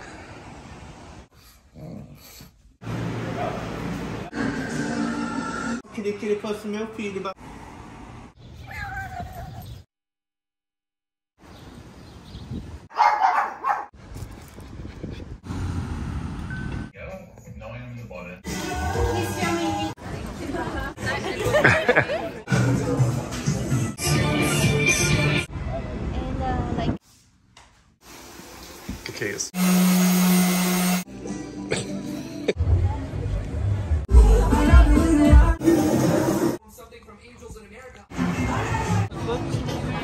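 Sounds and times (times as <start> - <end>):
dog barking: 12.9 - 13.9
electric orbital sander: 29.6 - 31.1.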